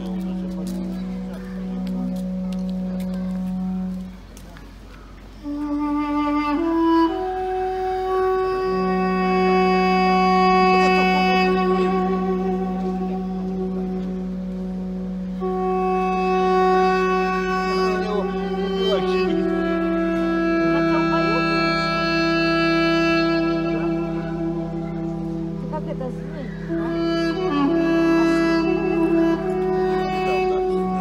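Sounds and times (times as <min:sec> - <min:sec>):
duduk slow melody: 0:00.0 - 0:31.0
low horn drone: 0:00.0 - 0:31.0.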